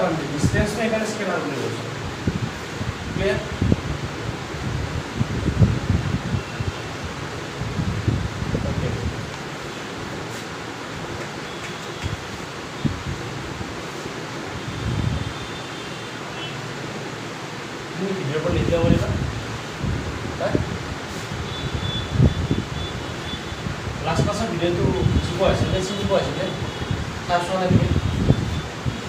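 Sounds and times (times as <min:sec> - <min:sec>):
steady room hiss: 0:00.0 - 0:29.0.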